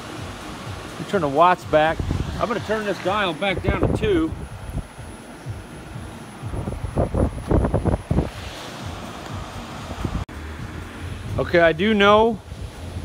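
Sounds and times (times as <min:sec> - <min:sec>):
oxygen concentrator running: 0:00.0 - 0:11.2
steady low hum: 0:00.0 - 0:13.0
wind on microphone: 0:01.7 - 0:11.4.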